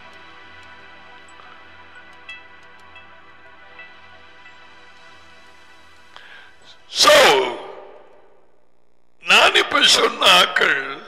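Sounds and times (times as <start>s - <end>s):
man speaking into headset microphone: 6.9s - 8.0s, 9.2s - 11.0s.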